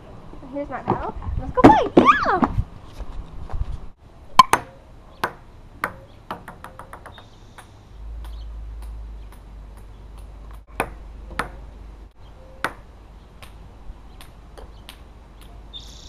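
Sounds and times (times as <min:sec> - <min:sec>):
ping-pong ball clicking: 0:04.4 - 0:11.6, 0:14.2 - 0:15.6.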